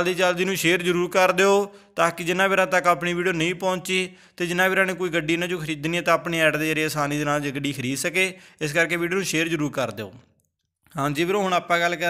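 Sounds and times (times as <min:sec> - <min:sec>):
man narrating: 0:00.0 - 0:10.2, 0:10.9 - 0:12.0.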